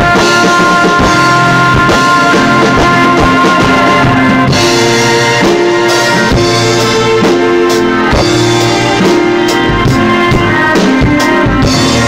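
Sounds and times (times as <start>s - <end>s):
drum kit playing: 0.0s - 12.0s
rock song with sustained chords: 0.0s - 12.0s.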